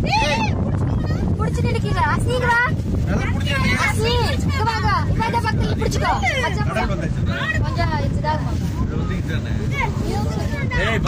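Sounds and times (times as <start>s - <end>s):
boat engine rumble: 0.0s - 11.0s.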